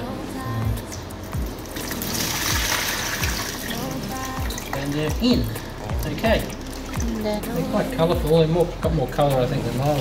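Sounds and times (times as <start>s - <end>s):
background music with beat: 0.0s - 10.0s
water pouring into bucket: 1.5s - 7.3s.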